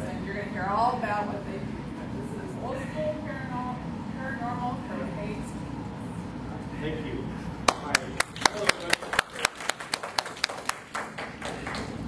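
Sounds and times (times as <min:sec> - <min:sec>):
sharp claps: 0:07.6 - 0:12.0.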